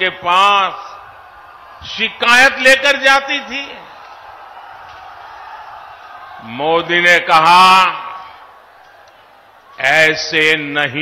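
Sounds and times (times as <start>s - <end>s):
man speaking over loudspeaker: 0.0s - 1.1s, 1.8s - 3.9s, 6.4s - 8.3s, 9.8s - 11.0s.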